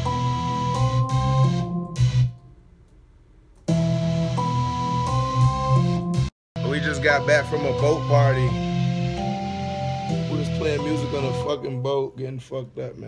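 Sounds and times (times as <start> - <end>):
beat with held notes and heavy bass: 0.0 - 13.0.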